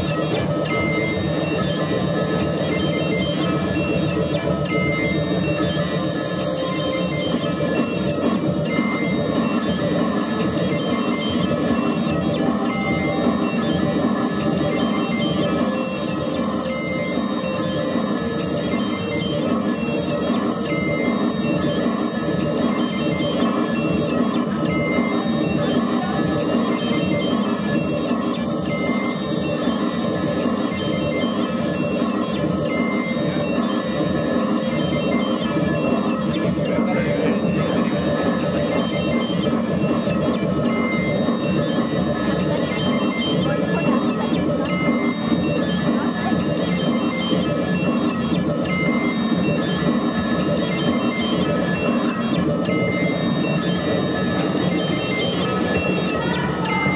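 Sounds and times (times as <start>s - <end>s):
wall of electronic noise: 0.0s - 56.9s.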